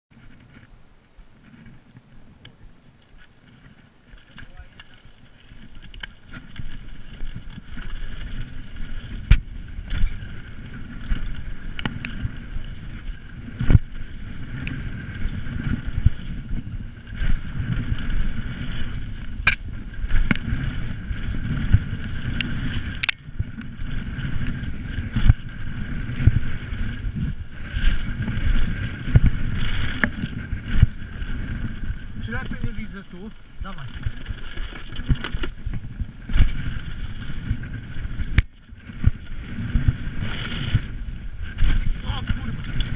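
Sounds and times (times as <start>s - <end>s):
bike knocking and rattling: 0.1s - 42.9s
bike tyres rumbling on dirt: 0.1s - 42.9s.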